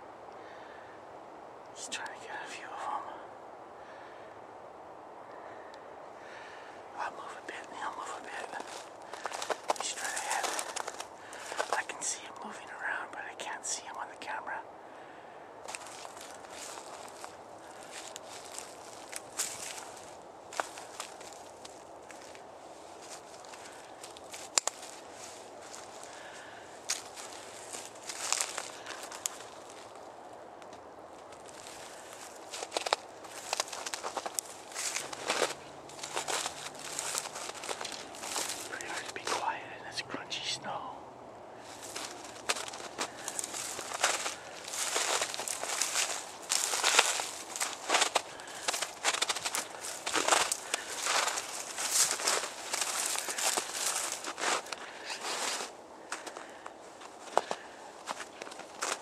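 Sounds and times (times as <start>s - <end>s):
footsteps crunching in snow: 7.1s - 12.6s, 15.6s - 30.3s, 31.0s - 40.9s, 41.6s - 59.0s.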